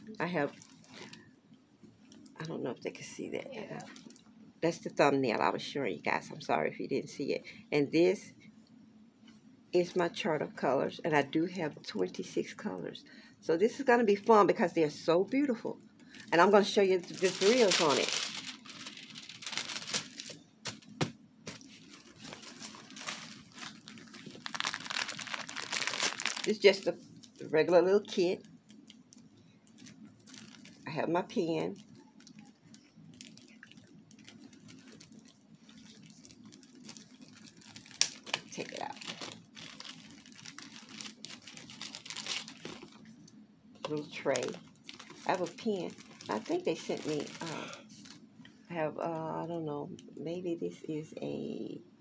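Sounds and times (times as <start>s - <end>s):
plastic film crinkling: 0.2s - 1.3s, 16.1s - 43.2s, 43.9s - 48.3s.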